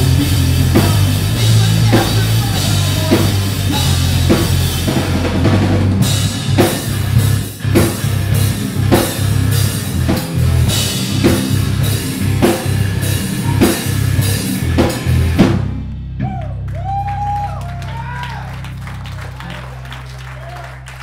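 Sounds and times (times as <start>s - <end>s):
pop-punk band playing live: 0.0s - 16.3s
crowd cheering and shouting: 13.1s - 14.4s, 16.2s - 21.0s.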